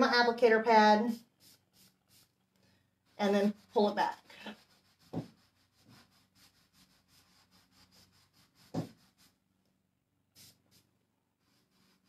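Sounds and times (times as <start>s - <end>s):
cloth pad rubbing wood: 3.1s - 9.4s, 11.4s - 12.0s.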